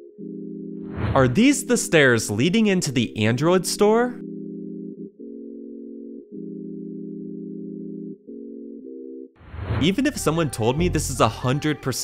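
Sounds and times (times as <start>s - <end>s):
low held chord tone: 0.0s - 1.9s, 3.2s - 9.4s
background music: 0.0s - 12.0s
person speaking: 1.1s - 4.2s, 9.8s - 12.0s.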